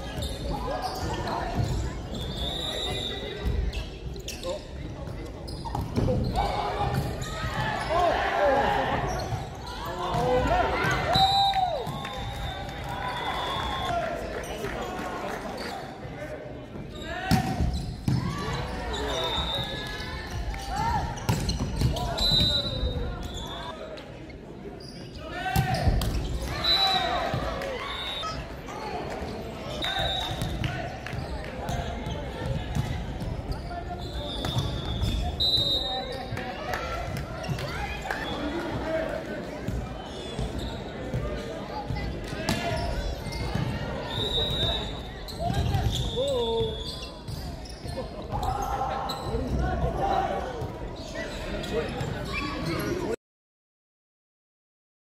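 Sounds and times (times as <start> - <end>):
shoes squeaking on court: 0.1 - 6.4, 17.7 - 23.7, 29.6 - 36.4, 39.8 - 49.6
players shouting: 6.3 - 14.2.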